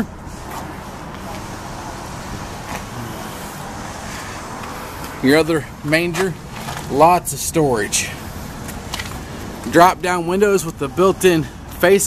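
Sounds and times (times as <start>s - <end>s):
distant road traffic: 0.0s - 12.0s.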